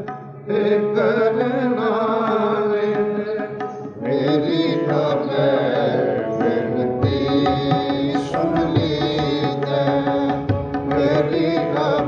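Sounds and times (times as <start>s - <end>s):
harmonium tones: 0.0s - 12.0s
man singing a hymn: 0.5s - 12.0s.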